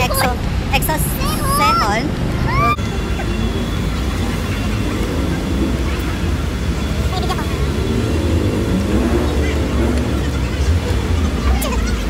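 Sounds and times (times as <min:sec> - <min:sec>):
traffic rumble: 0:00.0 - 0:12.0
voices of passers-by: 0:00.0 - 0:12.0.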